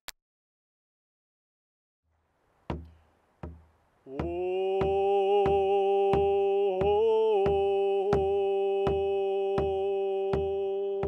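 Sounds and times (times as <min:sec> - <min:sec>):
drum slow steady beat: 0:02.7 - 0:11.0
person singing a long note: 0:04.1 - 0:11.0.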